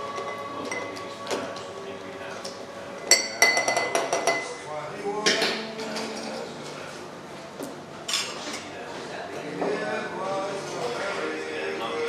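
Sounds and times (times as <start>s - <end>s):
glassware and bar tools clinking: 0.2s - 1.1s, 3.0s - 4.6s.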